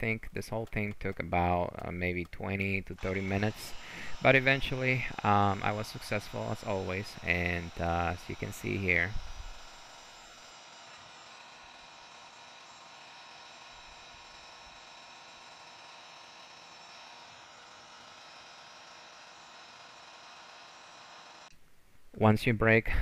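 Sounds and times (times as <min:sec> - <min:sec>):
heat gun fan hissing: 0:02.9 - 0:21.5.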